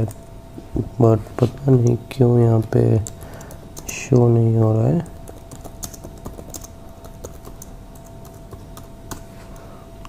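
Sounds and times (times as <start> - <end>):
faint steady hum: 0.0 - 10.0
keyboard typing: 1.8 - 9.7.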